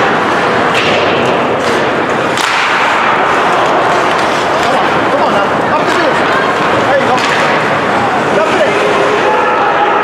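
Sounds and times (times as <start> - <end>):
skate and arena noise: 0.0 - 10.0
stick cracking on puck: 0.7 - 4.8, 7.2 - 7.6.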